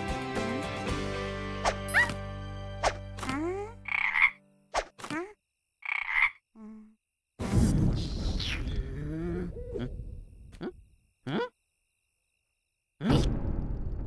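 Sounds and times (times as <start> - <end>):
cartoon frog croaks: 3.2 - 7.0, 8.0 - 11.6.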